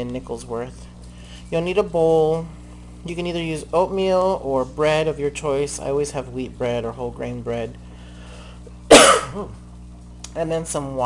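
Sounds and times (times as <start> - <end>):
woman coughing: 8.9 - 9.6.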